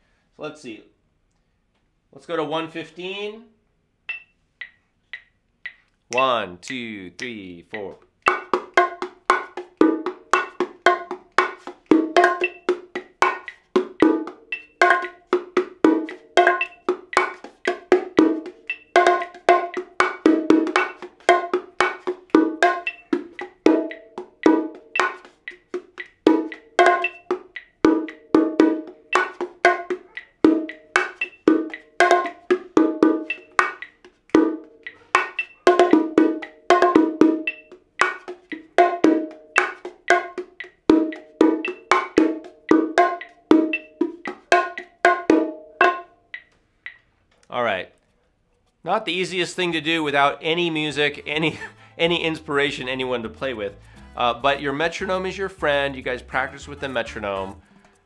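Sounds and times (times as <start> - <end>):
bongos played by hand: 7.7 - 47.0, 50.4 - 58.0.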